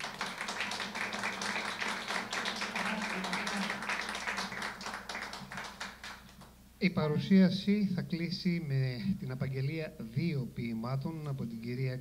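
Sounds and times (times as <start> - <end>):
small audience applauding: 0.0 - 6.5.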